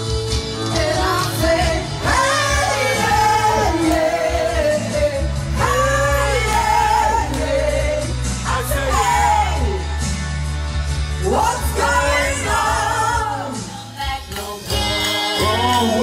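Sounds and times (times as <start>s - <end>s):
electric keyboard with bass: 0.0s - 16.0s
woman singing into microphone: 0.5s - 9.8s, 11.2s - 16.0s.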